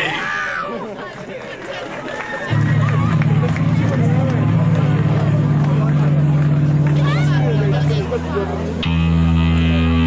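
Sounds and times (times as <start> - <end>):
rock band droning chord: 2.6 - 10.0.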